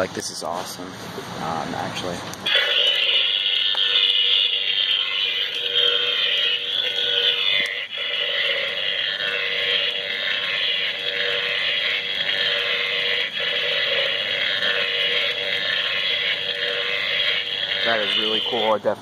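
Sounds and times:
buzzing sound effect from speaker: 2.4s - 19.0s.

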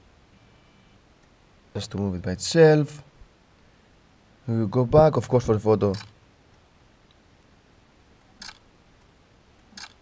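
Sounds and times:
camera shutter clicks: 8.4s - 8.6s, 9.8s - 10.0s.

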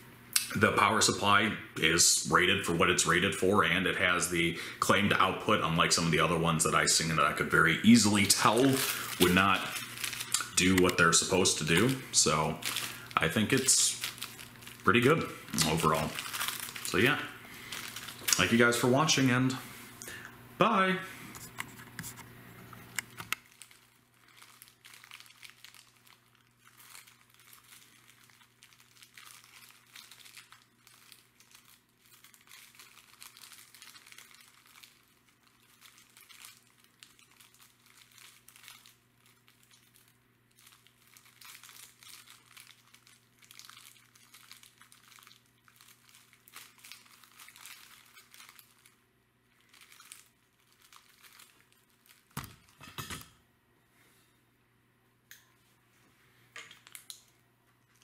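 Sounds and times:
plastic bag of beads crinkling: 5.9s - 19.6s, 23.0s - 52.8s, 56.6s - 58.0s.

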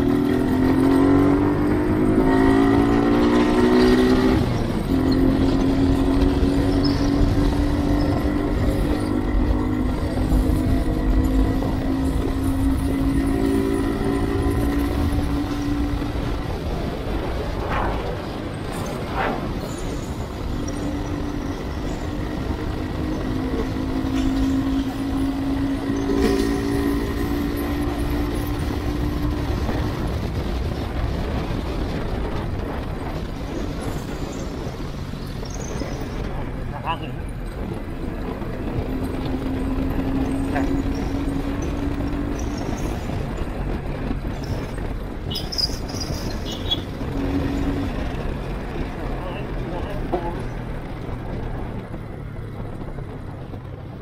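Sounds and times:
motorcycle engine running: 0.0s - 54.0s
wind and road noise: 0.0s - 54.0s.

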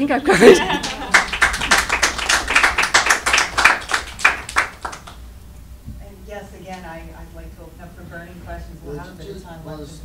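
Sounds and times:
audience applauding: 0.6s - 5.2s.

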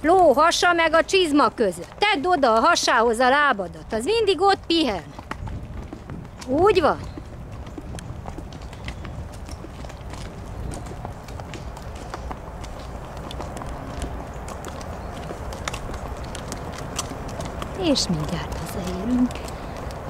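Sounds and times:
hoof clops on dirt: 0.0s - 20.0s.

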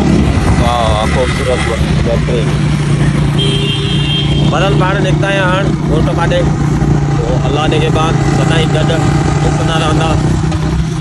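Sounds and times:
motorcycle engine running: 0.0s - 11.0s
man talking: 0.5s - 2.6s, 4.4s - 10.4s.

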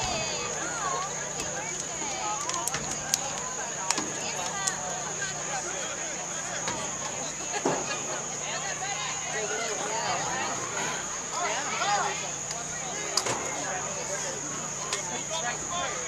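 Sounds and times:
chatter of many voices: 0.0s - 16.0s.

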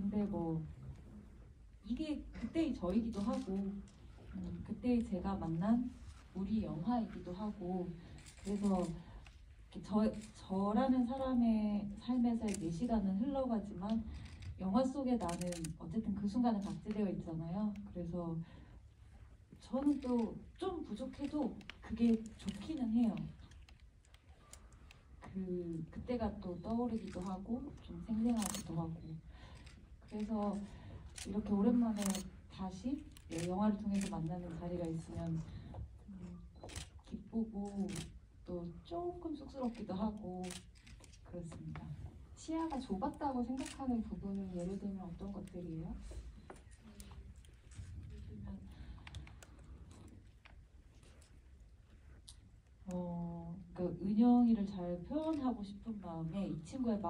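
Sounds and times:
woman speaking into a microphone: 0.0s - 0.8s, 1.8s - 18.7s, 19.6s - 23.6s, 25.2s - 29.4s, 30.0s - 47.2s, 47.9s - 49.4s, 52.8s - 57.0s
faint clicks and rustles: 2.9s - 11.2s, 13.8s - 15.8s, 19.0s - 38.2s, 39.2s - 53.0s.

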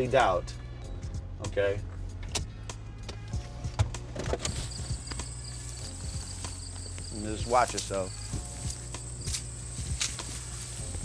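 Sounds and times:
footsteps through weeds and brush: 4.5s - 11.0s
stems and leaves crackling: 4.5s - 11.0s.

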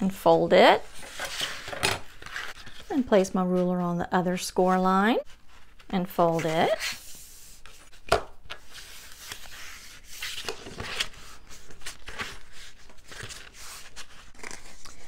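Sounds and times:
paper rustling and rubbing: 5.2s - 8.0s, 8.6s - 15.0s.

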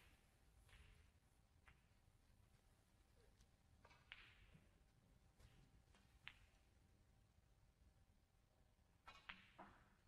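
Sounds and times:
snooker balls clicking: 3.8s - 4.8s, 5.5s - 6.8s.

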